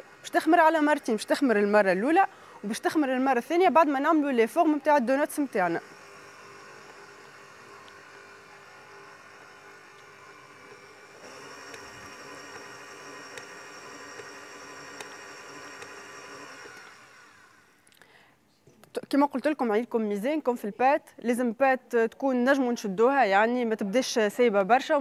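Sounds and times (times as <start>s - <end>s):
stand mixer motor whirring: 0.0s - 3.3s, 4.6s - 17.8s.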